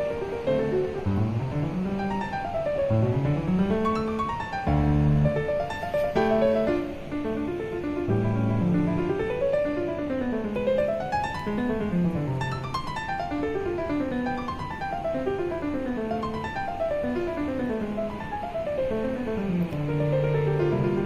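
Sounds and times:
solo piano arpeggios: 0.0s - 21.0s.

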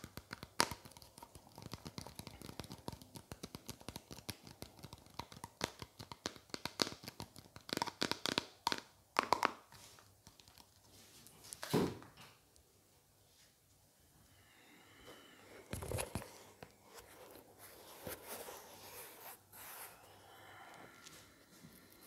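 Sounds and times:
nails tapping plastic container: 6.0s - 9.6s.

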